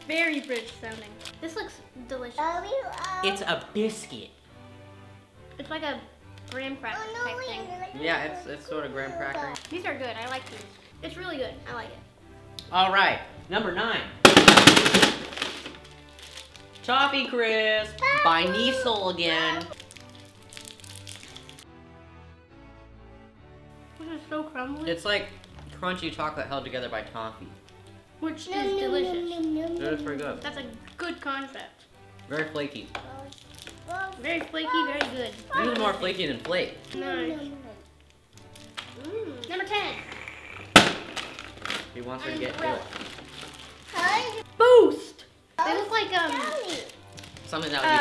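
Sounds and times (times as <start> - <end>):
plastic wrappers crinkling and tearing: 0.0 - 1.7, 2.7 - 3.6, 9.2 - 11.0, 14.3 - 21.6, 28.6 - 31.6, 32.3 - 44.5, 45.7 - 48.0
quiet background music: 0.0 - 48.0.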